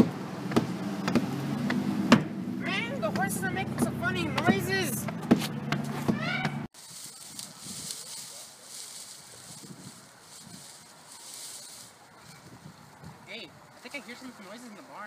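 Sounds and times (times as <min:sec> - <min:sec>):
sharp knocks: 0:00.0 - 0:02.4
wind noise on microphone: 0:06.9 - 0:08.3, 0:09.0 - 0:13.8.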